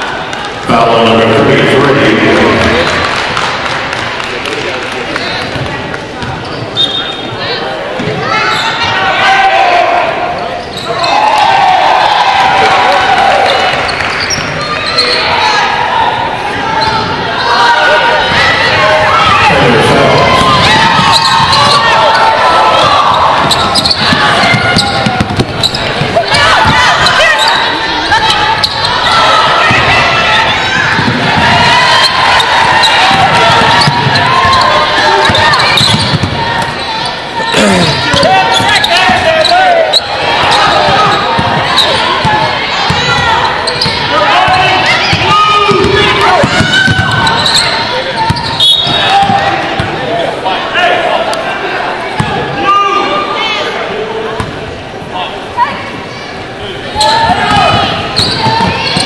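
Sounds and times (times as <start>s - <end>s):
sneakers squeaking: 5.2s - 9.1s, 10.2s - 11.5s, 13.3s - 15.7s, 16.6s - 50.2s, 55.6s - 59.0s
people calling out: 14.7s - 53.9s
basketball bouncing: 22.9s - 27.5s, 30.7s - 36.8s, 40.6s - 50.0s, 57.3s - 59.0s.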